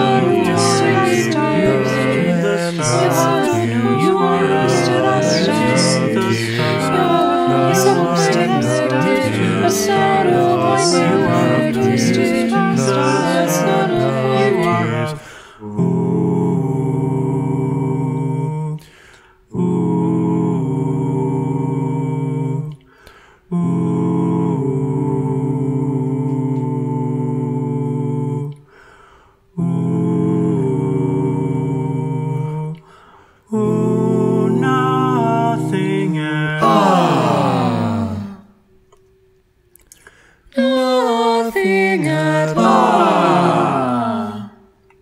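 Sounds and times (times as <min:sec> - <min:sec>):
a cappella ensemble singing chords: 0:00.0 - 0:45.0.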